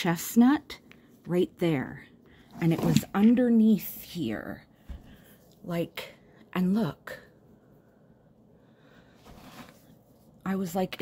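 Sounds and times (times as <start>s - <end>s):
faint soft rustle: 9.0s - 10.5s.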